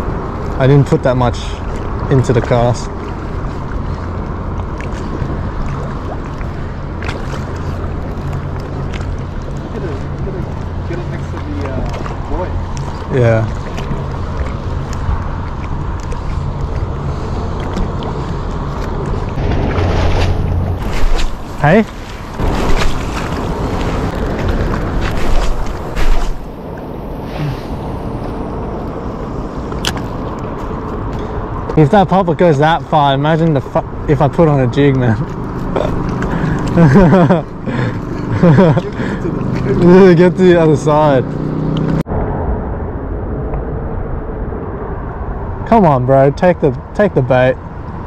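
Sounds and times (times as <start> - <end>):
water lapping at rocks: 0.0 - 27.5, 29.6 - 42.0
wind buffeting microphone: 0.0 - 48.0.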